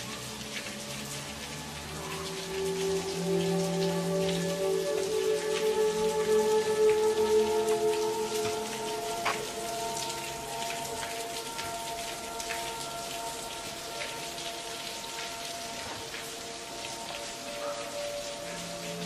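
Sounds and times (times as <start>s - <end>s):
slow background music: 0.0s - 19.0s
water drops falling: 0.0s - 19.0s.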